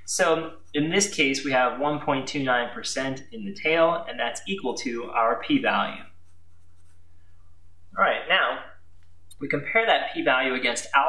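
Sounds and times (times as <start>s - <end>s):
low electrical hum: 0.0s - 11.0s
marker scratching on paper: 6.1s - 7.1s.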